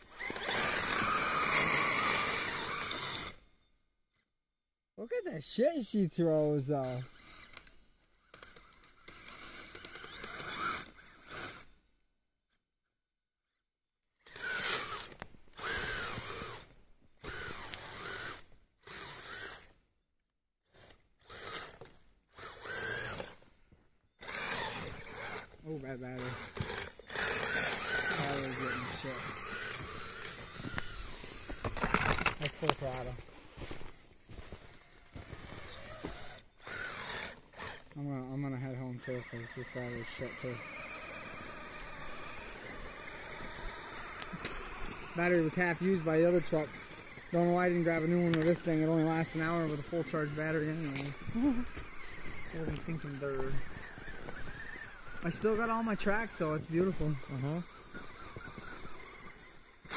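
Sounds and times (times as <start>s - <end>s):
electric motor whining: 0.0s - 3.8s, 6.4s - 11.9s, 14.2s - 19.8s, 20.6s - 59.9s.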